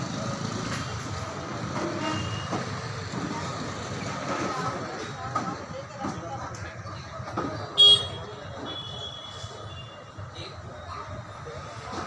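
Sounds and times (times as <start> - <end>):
low street background noise: 0.0 - 12.0
high-pitched vehicle horn toot: 7.8 - 10.0.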